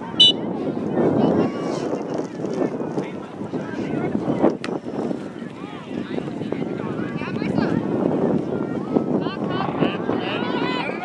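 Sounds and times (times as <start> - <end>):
scattered voices: 0.0 - 11.0
wind on microphone: 0.0 - 11.0.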